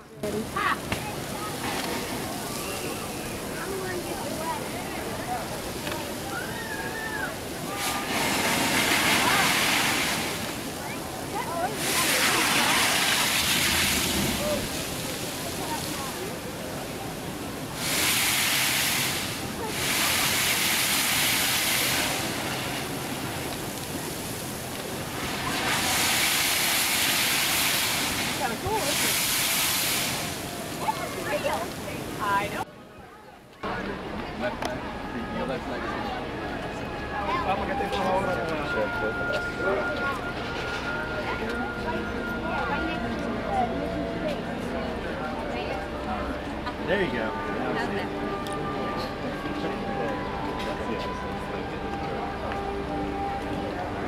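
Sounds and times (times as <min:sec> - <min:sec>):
water jet rushing hiss: 0:06.2 - 0:32.6.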